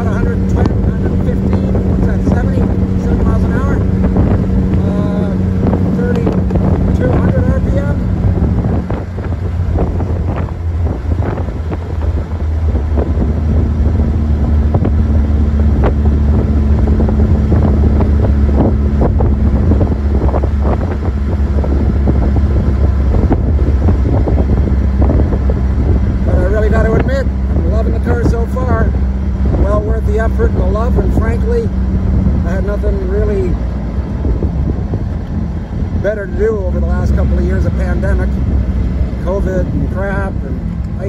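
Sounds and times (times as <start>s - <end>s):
car engine running: 0.0s - 41.0s
wind noise on microphone: 0.0s - 41.0s.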